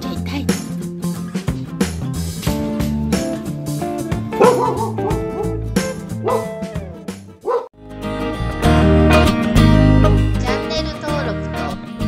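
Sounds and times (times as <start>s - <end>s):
guitar music: 0.0s - 12.0s
dog barking: 4.4s - 5.6s, 6.2s - 6.6s, 7.4s - 7.7s.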